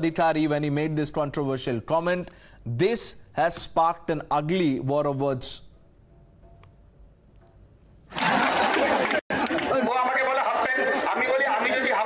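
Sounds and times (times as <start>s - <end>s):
man addressing a gathering: 9.6s - 12.0s.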